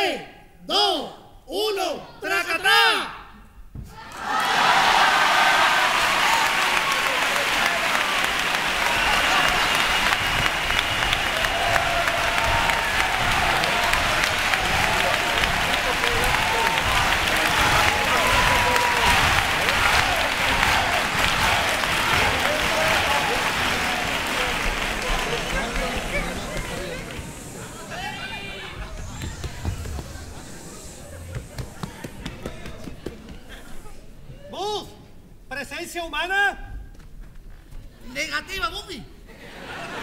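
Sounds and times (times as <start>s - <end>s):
audience applauding and cheering: 4.0s - 33.5s.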